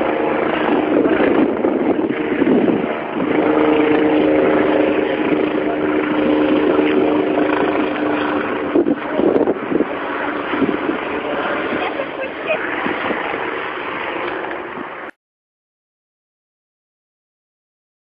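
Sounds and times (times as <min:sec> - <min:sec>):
helicopter engine and rotor drone: 0:00.0 - 0:15.1.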